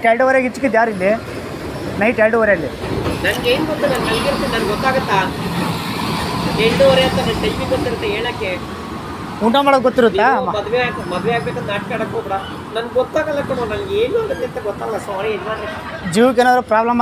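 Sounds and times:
people talking: 0:02.0 - 0:05.7, 0:06.5 - 0:08.7, 0:09.4 - 0:17.0.

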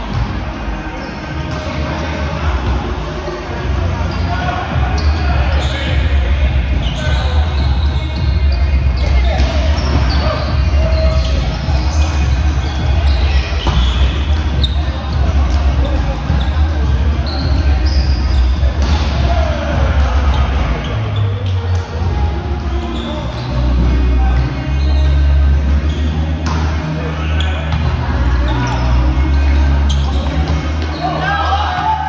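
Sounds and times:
volleyball being hit and bouncing: 0:18.6 - 0:20.7, 0:26.4 - 0:26.8
players shouting: 0:26.8 - 0:32.0.

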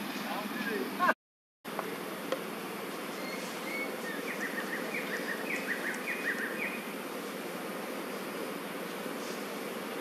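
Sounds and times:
insect buzzing: 0:01.8 - 0:10.0.

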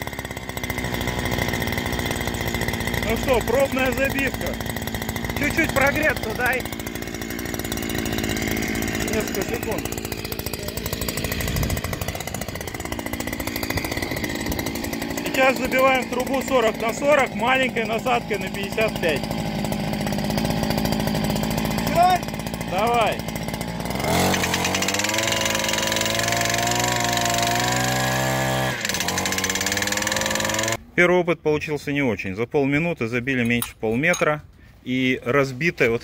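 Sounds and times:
two-stroke petrol engine running: 0:00.0 - 0:30.8.

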